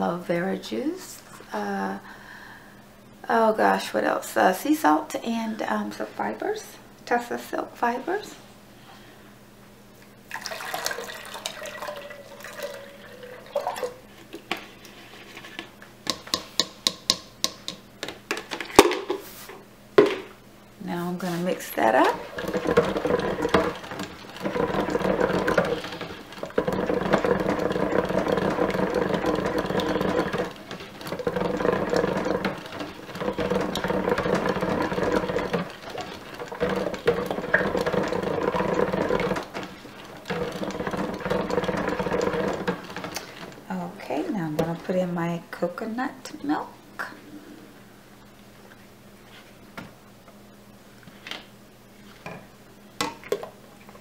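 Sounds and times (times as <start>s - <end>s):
liquid pouring: 10.3s - 14.0s, 22.2s - 43.4s
stick blender motor humming: 21.7s - 44.9s.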